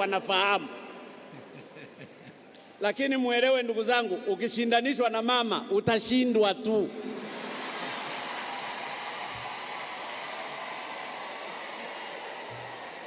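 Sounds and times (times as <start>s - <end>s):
large audience applauding: 7.2s - 13.0s.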